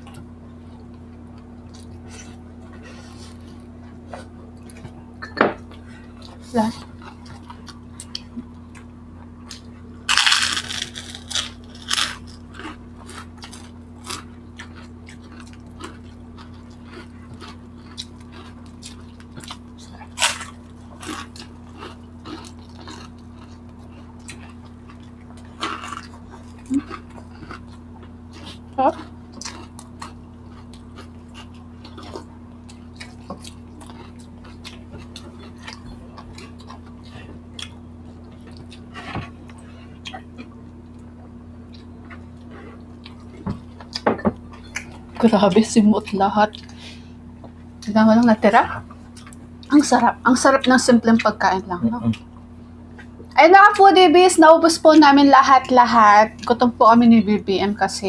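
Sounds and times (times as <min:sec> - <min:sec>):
chewing and lip smacks: 0:00.0 - 0:09.9, 0:10.9 - 0:47.9, 0:48.8 - 0:49.7
steady low hum: 0:00.0 - 0:58.0
crunchy bites: 0:09.5 - 0:16.0.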